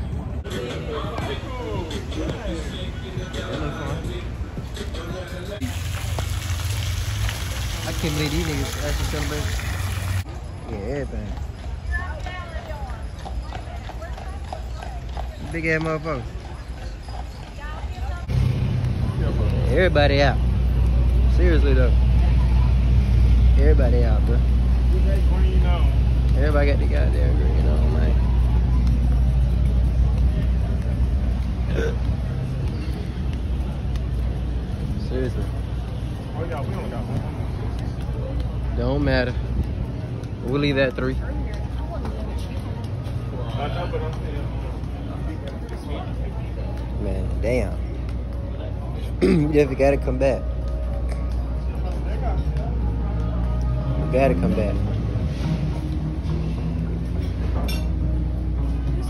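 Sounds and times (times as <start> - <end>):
street traffic rumble: 0.0 - 59.0
fountain splashing into basin: 5.6 - 10.2.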